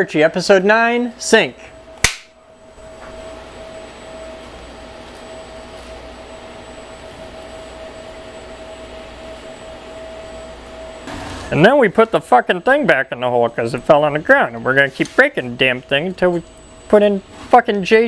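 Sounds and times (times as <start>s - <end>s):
mid-pitched whine: 0.0s - 18.0s
room tone hiss and hum: 0.0s - 18.0s.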